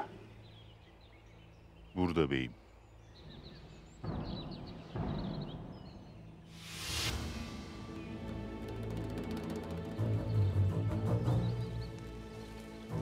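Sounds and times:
birds chirping: 0.0 - 13.0
rustling in undergrowth: 11.3 - 13.0.

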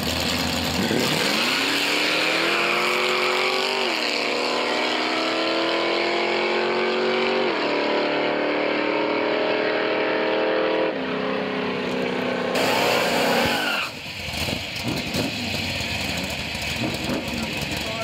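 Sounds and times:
drag racing cars accelerating: 0.0 - 18.0.

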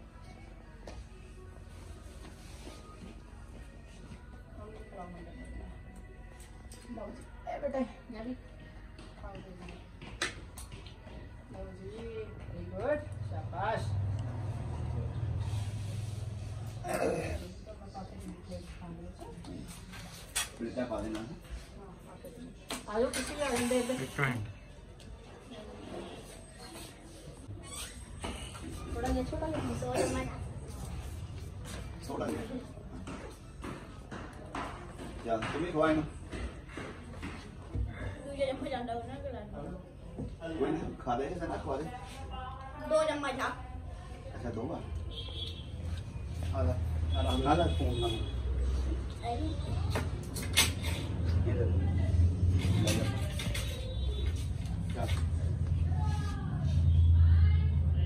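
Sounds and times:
faint indistinct voices: 0.0 - 58.0
faint talk in a room: 0.0 - 58.0.

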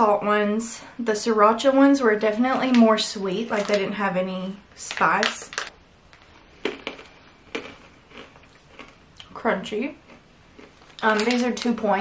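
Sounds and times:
crunchy beans being chewed: 5.5 - 9.4, 10.0 - 11.8.

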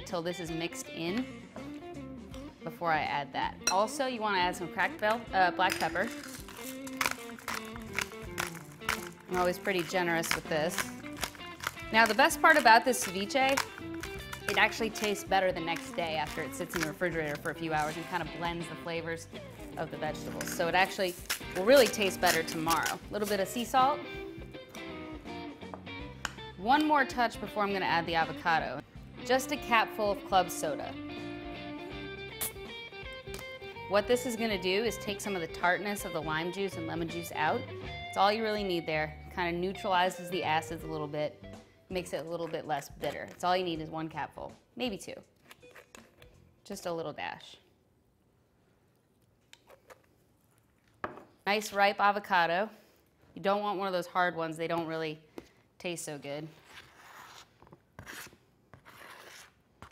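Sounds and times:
background music with held notes: 0.0 - 43.3
pepper mill grinding: 5.6 - 18.6, 19.5 - 23.8.

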